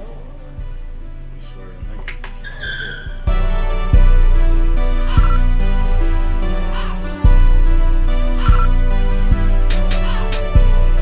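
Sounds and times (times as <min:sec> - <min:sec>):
background music with bass beat: 0:00.0 - 0:11.0
tyre screech sound effect: 0:02.4 - 0:03.2.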